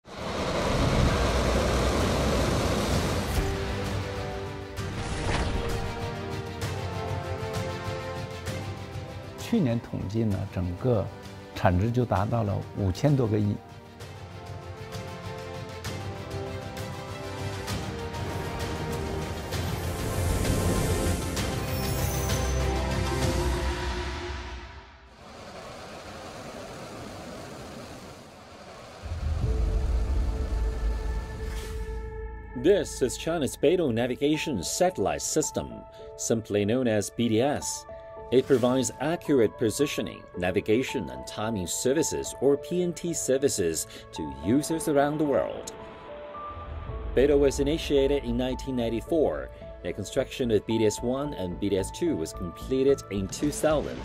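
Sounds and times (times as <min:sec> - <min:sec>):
rocket engines roaring: 0:00.1 - 0:03.5, 0:25.1 - 0:31.3
steady music tones: 0:01.5 - 0:25.0, 0:29.0 - 0:54.0
deep bass rumble: 0:29.0 - 0:32.2.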